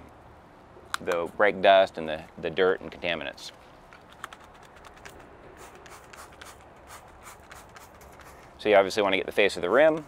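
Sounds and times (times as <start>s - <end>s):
spray bottle squirting: 4.0s - 8.5s.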